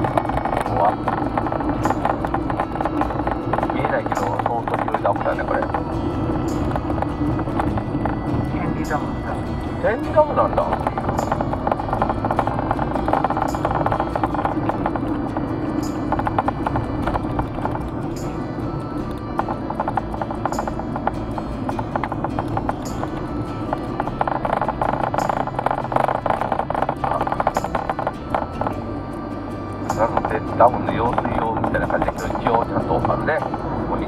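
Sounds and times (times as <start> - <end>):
car driving rumble: 0.0 - 34.0
music with clip-clop percussion: 0.0 - 34.0.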